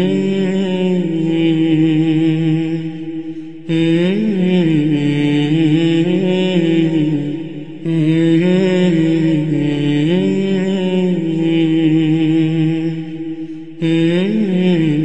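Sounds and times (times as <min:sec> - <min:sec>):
man chanting unaccompanied: 0:00.0 - 0:15.0.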